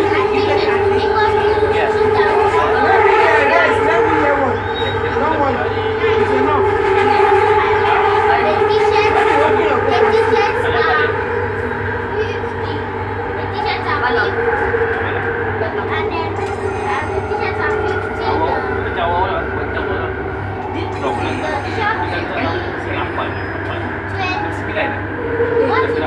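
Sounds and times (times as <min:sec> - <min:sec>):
low train rumble: 0:00.0 - 0:26.0
metro train motor whine: 0:00.0 - 0:26.0
passengers' voices: 0:00.0 - 0:26.0.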